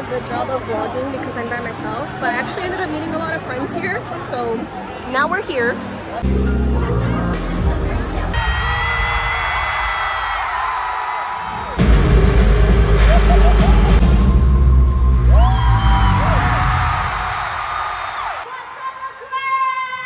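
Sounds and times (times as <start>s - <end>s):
crowd screaming and cheering: 0.0s - 20.0s
live concert music with heavy bass: 6.1s - 9.8s, 11.5s - 17.4s.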